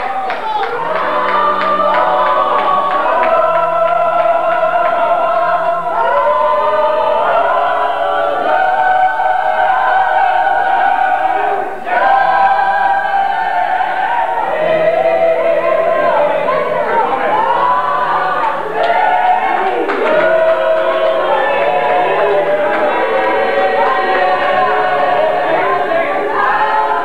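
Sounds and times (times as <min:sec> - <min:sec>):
church choir singing: 0:00.0 - 0:27.0.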